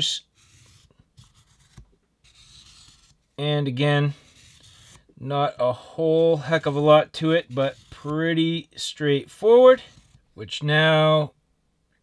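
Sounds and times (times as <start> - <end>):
marker scratching on rubber: 0.0 - 3.4, 4.0 - 5.1, 6.2 - 10.4.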